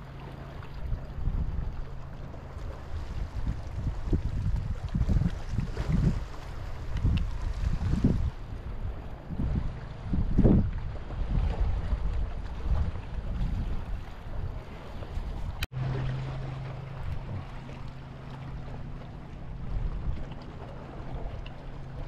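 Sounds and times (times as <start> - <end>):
wind buffeting microphone: 0.7 - 22.0.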